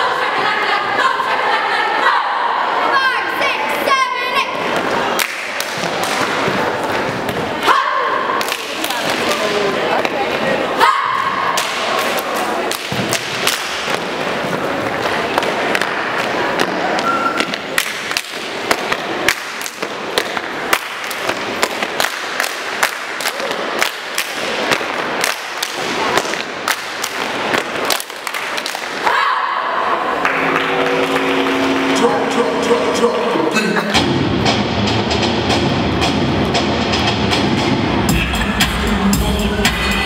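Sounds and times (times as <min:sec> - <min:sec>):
crowd noise: 0:00.0 - 0:40.0
pitched music track: 0:30.2 - 0:40.0.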